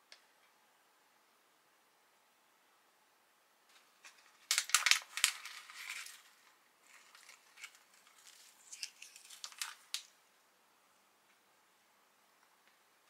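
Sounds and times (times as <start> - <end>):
foil pouch crinkling: 4.0 - 10.1.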